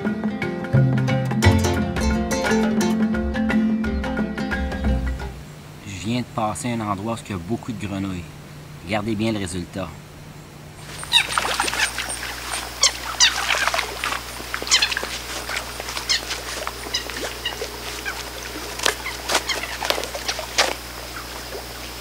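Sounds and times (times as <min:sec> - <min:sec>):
frogs calling: 0:03.8 - 0:22.0.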